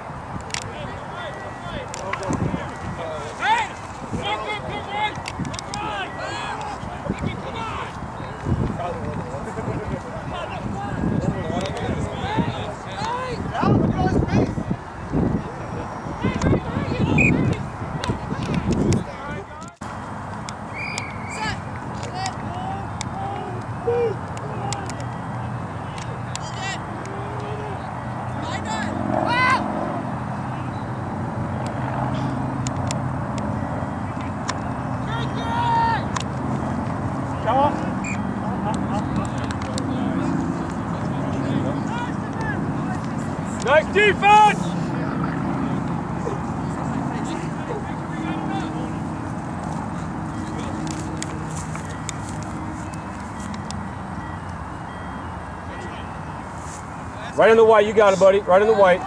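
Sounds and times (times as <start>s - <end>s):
distant shouts of players: 15.8s - 18.2s, 20.7s - 25.2s, 35.0s - 36.2s, 43.6s - 45.5s.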